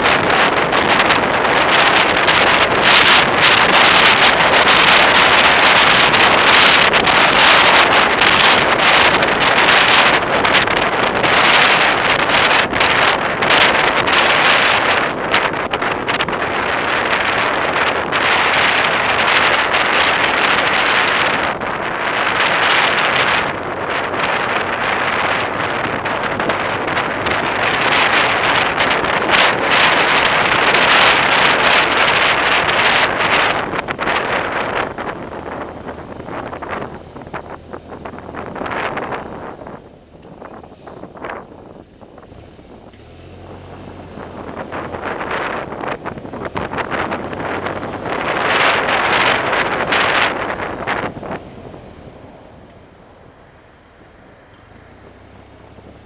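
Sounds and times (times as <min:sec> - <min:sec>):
city traffic: 0:00.0 - 0:56.0
wind rushing over microphone: 0:00.0 - 0:56.0.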